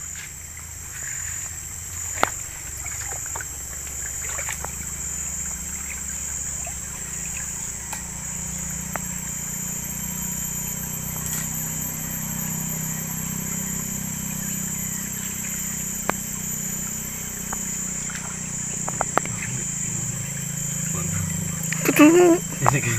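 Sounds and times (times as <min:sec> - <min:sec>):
high-pitched drone: 0:00.0 - 0:22.9
stream water rippling: 0:00.0 - 0:22.9.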